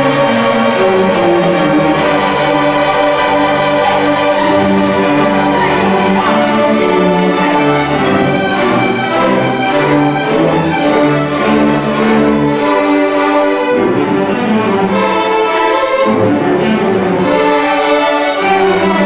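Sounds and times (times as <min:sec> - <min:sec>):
string orchestra playing: 0:00.0 - 0:19.0.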